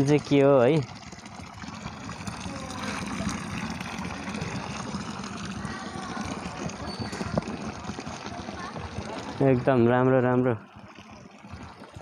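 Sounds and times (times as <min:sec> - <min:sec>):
fountain water splashing into basin: 0:00.0 - 0:12.0.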